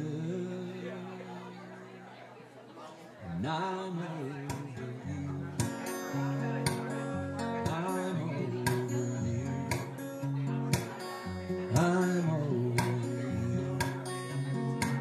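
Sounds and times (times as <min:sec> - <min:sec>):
acoustic guitar chords: 0:00.0 - 0:02.5, 0:03.2 - 0:15.0.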